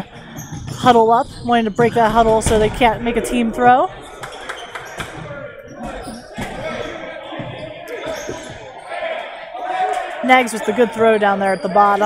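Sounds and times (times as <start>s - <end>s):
players' voices: 0.0s - 12.0s.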